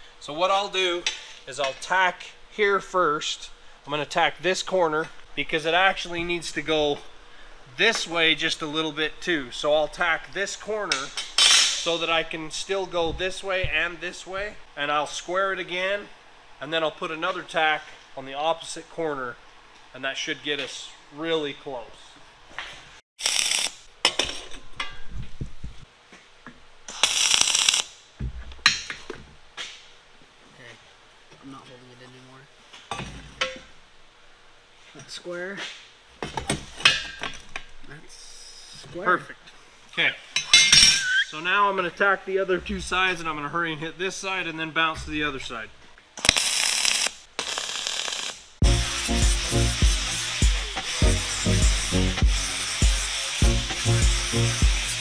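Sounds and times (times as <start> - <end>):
welding arc crackling: 23.2 - 23.9, 26.9 - 28.0, 46.2 - 55.0
background music with steady beat: 48.6 - 55.0.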